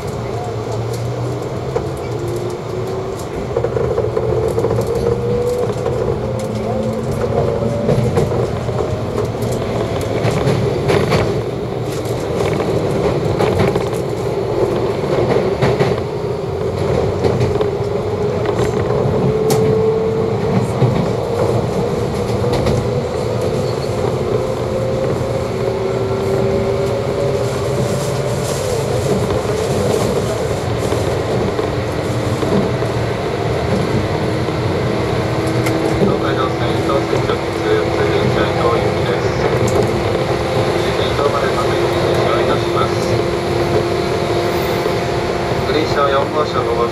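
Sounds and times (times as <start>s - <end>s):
rail-joint clicks: 0.0s - 25.4s, 35.2s - 45.0s
train wheels rumbling on rail: 0.0s - 46.9s.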